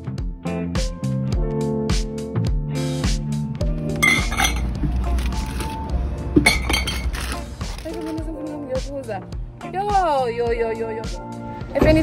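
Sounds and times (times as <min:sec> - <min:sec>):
background music with a beat: 0:00.0 - 0:12.0
glass bottles clinking: 0:04.0 - 0:04.8, 0:06.4 - 0:08.1.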